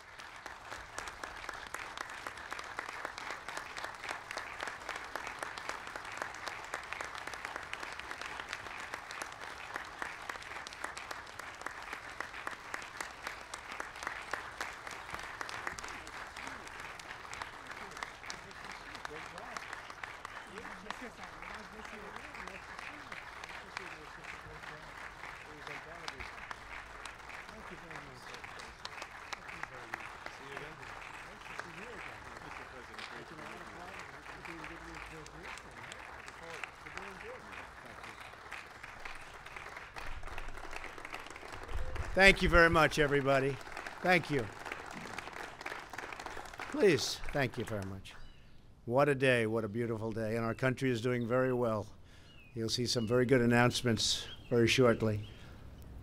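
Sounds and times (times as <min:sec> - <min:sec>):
audience applauding: 0:00.0 - 0:48.1.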